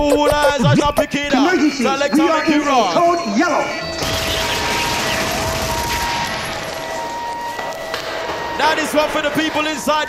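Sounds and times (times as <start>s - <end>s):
held tones: 0.0s - 4.6s
crackling hissing rave music: 0.0s - 6.7s.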